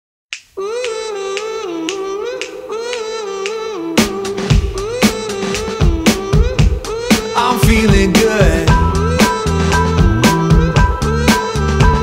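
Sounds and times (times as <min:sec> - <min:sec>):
finger snaps: 0:00.3 - 0:03.6
wordless vocal melody: 0:00.6 - 0:12.0.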